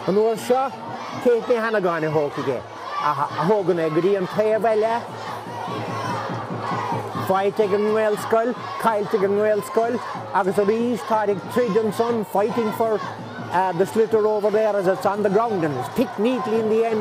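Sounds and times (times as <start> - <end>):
crowd shouting: 0.0 - 17.0.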